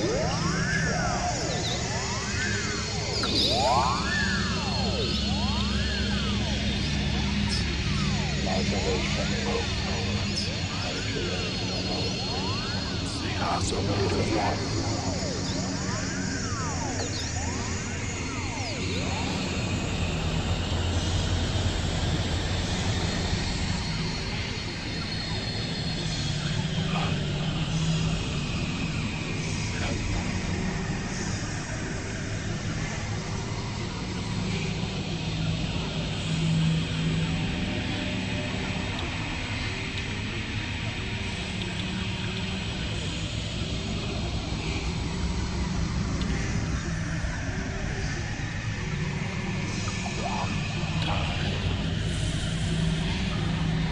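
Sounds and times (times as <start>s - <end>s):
droning experimental noise music: 0.0s - 53.9s.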